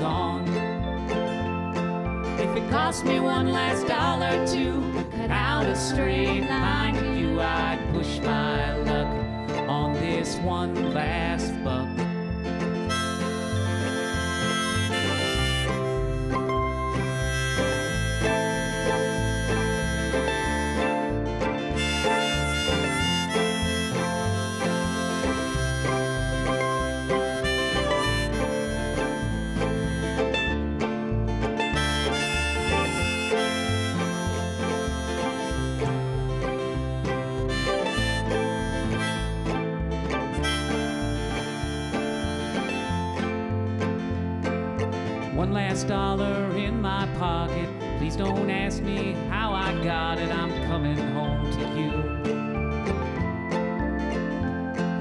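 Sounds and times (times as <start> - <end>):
acoustic guitar strumming: 0.0 - 55.0
mandolin: 0.0 - 55.0
upright bass: 0.0 - 55.0.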